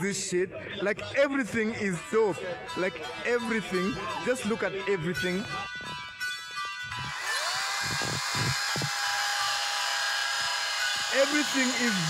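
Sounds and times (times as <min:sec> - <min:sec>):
electric chainsaw motor whine: 0:06.9 - 0:12.0.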